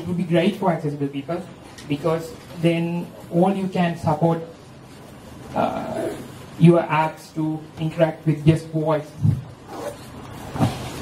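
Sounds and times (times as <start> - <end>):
room background noise: 0.0 - 11.0.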